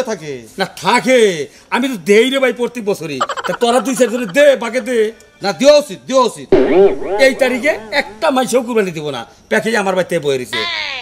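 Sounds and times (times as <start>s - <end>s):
man's voice swinging in pitch: 3.2s - 5.1s, 6.6s - 8.8s.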